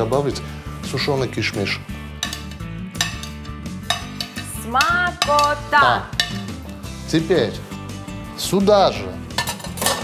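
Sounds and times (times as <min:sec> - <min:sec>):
background music: 0:00.0 - 0:10.0
metal spoon scraping ceramic plate: 0:02.2 - 0:06.6, 0:09.3 - 0:10.0.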